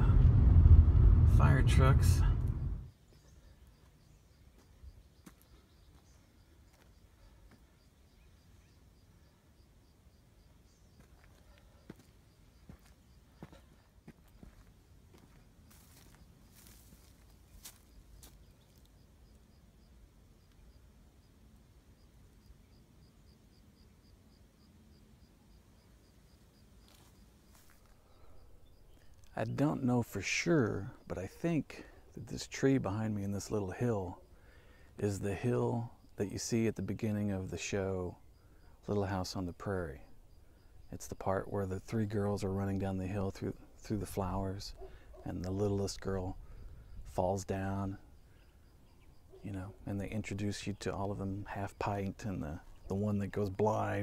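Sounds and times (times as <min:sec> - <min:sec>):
insect chirping: 0:02.3 - 0:29.4, 0:34.2 - 0:35.0, 0:38.1 - 0:42.2, 0:46.3 - 0:53.0.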